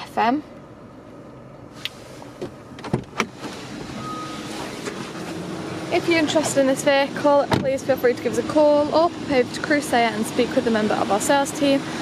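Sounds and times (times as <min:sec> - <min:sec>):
short beep: 0:04.0 - 0:04.5.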